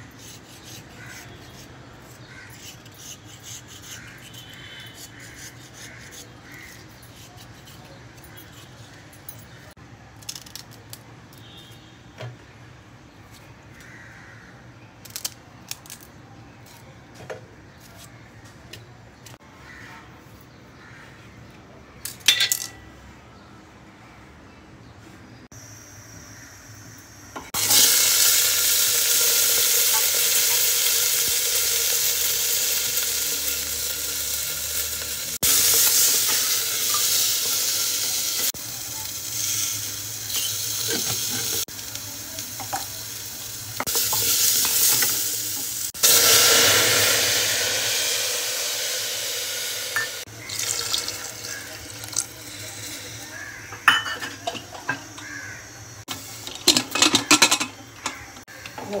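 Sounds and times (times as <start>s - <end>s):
vegetables sizzling in hot fat: 25.6s - 53.9s
metal lid clicks and clanks: 53.7s - 55.2s, 56.4s - 58.8s.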